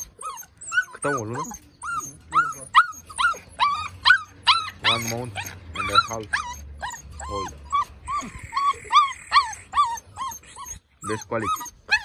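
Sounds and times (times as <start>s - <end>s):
puppy whining: 0.0s - 12.0s.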